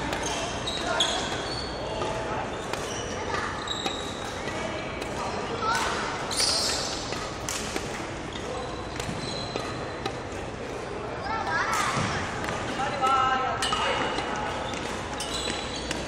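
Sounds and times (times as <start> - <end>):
shoes squeaking: 0.0 - 10.5, 13.6 - 16.0.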